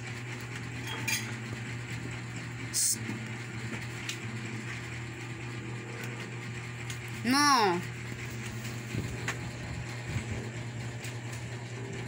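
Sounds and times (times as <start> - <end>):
steady low hum: 0.0 - 12.0
plates and tableware clinking: 0.8 - 1.4.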